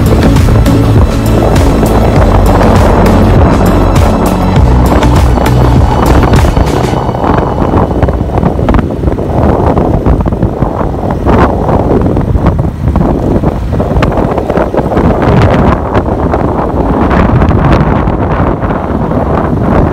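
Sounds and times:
background music: 0.0s - 8.8s
motorcycle rumble: 0.0s - 19.9s
wind rushing over microphone: 0.0s - 19.9s.

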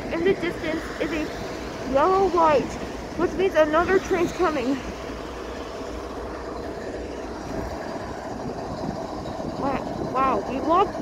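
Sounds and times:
diesel locomotive idling: 0.0s - 11.0s.

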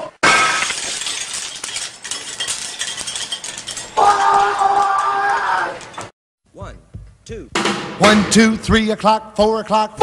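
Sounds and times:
glass shattering: 0.2s - 5.2s
glass pieces tinkling: 0.3s - 5.1s.

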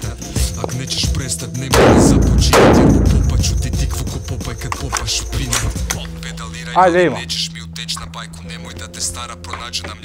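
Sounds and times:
hip-hop music with steady beat: 0.0s - 10.0s
rifle shots ringing: 1.8s - 5.6s.

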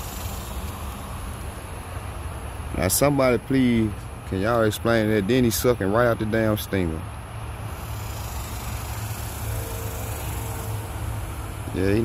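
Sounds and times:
engine idling hum: 0.0s - 12.0s.

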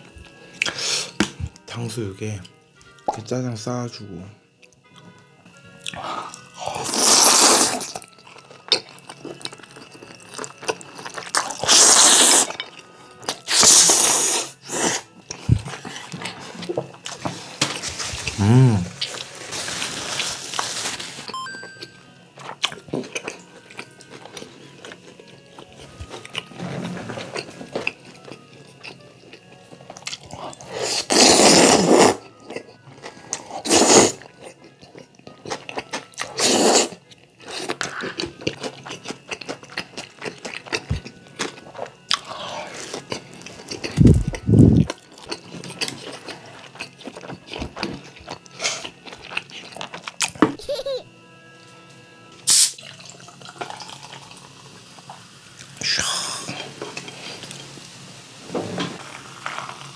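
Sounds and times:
quiet background music: 0.0s - 59.9s
noodles slurped: 6.6s - 8.0s, 11.4s - 12.6s, 30.6s - 32.3s
chewing and mouth clicks: 42.9s - 50.4s.

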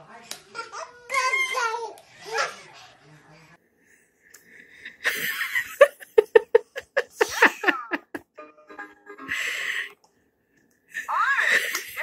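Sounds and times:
babies babbling: 0.5s - 2.8s
babies' high-pitched excited cries: 0.5s - 2.8s, 11.0s - 12.0s.

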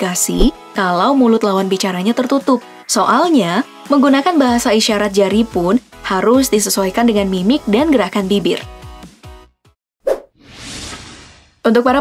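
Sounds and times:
background music: 0.0s - 9.8s
whoosh: 10.1s - 11.7s.

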